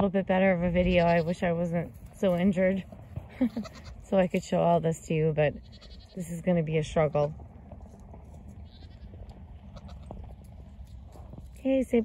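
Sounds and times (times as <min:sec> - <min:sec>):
wind rumble: 0:00.0 - 0:12.0.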